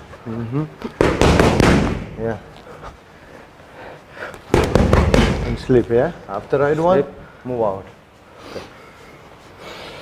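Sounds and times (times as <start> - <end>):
boxing gloves hitting mitts: 0.8 - 2.3, 4.5 - 5.8.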